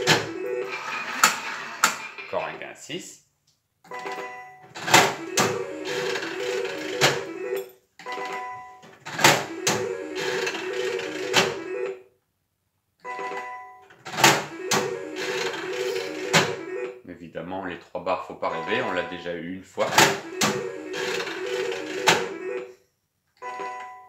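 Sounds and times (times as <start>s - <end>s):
slot machine electronic jingle: 0.0s - 1.1s, 4.0s - 8.6s, 9.4s - 12.0s, 14.4s - 17.0s, 18.5s - 19.3s, 20.1s - 22.7s
slot machine clunks: 0.0s - 2.3s, 4.0s - 8.6s, 9.2s - 11.9s, 14.2s - 16.8s, 18.5s - 19.2s, 19.9s - 22.7s.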